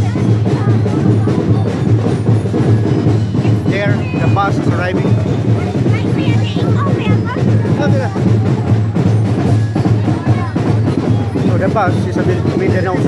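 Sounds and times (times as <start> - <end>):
crowd talking and calling out: 0.0 - 13.0
drums playing a steady beat: 0.0 - 13.0.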